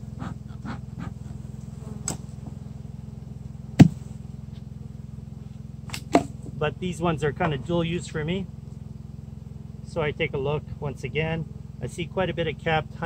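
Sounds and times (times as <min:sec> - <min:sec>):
honeybees humming: 0:00.0 - 0:13.0.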